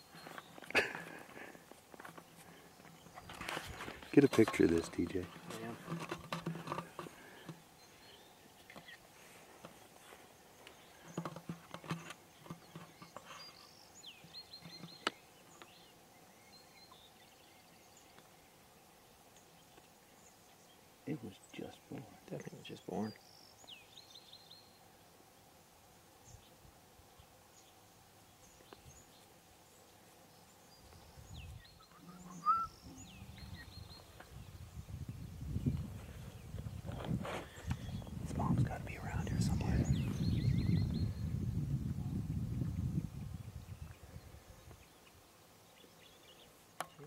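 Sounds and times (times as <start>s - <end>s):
bird singing: 0.0s - 1.5s, 6.8s - 47.0s
handling knocks and rustles: 0.2s - 7.6s
loud high bird call: 31.8s - 33.8s.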